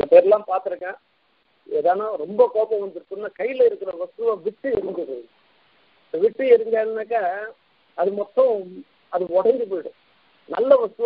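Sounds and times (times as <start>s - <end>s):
man speaking: 0.0s - 1.0s, 1.7s - 5.3s, 6.1s - 11.0s.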